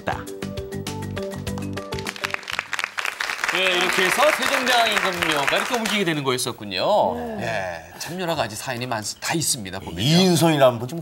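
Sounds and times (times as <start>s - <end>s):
background music: 0.0s - 7.9s
studio audience applauding: 1.4s - 6.4s.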